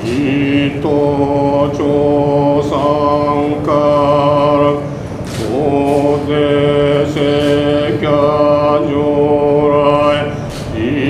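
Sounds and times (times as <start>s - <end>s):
person chanting a prayer: 0.0s - 11.0s.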